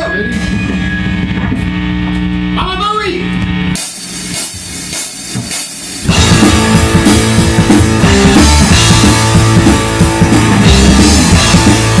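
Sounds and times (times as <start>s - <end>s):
drums and cymbals: 0.0s - 12.0s
rock band playing: 0.0s - 12.0s.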